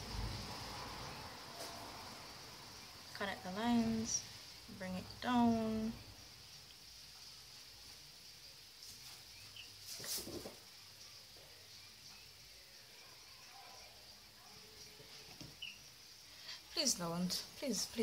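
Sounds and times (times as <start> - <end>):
steady high hiss: 0.0 - 18.0
faint bird chirps: 8.4 - 17.2.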